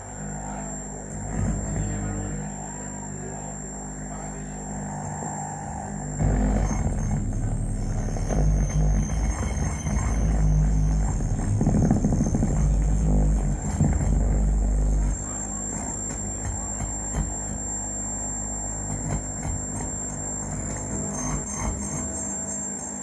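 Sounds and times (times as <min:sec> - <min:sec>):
electronic drone music: 0:00.0 - 0:22.2.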